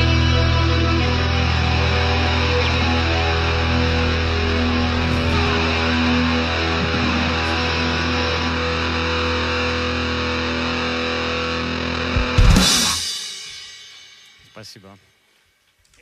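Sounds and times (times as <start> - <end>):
distorted electric guitar chord: 0.0 - 14.1.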